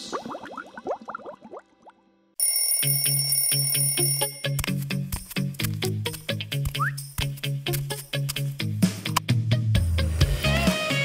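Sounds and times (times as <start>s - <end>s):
rising bubbly blips: 0.0s - 2.0s
bell ringing rapidly: 2.4s - 4.7s
cartoon music with bass: 4.5s - 11.0s.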